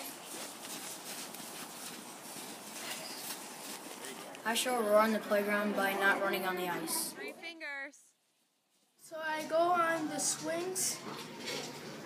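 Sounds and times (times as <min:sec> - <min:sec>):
crunching in packed snow: 0:00.0 - 0:04.4
faint outdoor hiss: 0:00.0 - 0:11.9.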